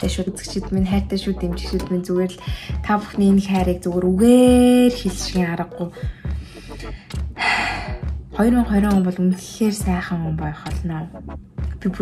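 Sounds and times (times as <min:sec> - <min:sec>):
woman talking: 0:00.0 - 0:06.1, 0:08.3 - 0:11.2, 0:11.8 - 0:12.0
background music: 0:00.0 - 0:12.0.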